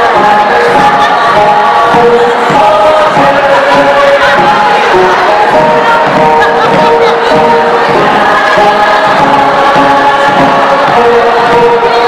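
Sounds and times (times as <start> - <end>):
group singing held notes: 0.0 - 12.0
instrumental accompaniment: 0.0 - 12.0.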